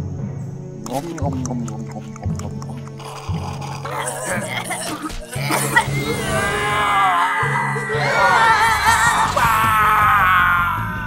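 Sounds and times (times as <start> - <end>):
background music: 0.0 - 11.0
cartoon voices roaring and yelling: 2.2 - 11.0.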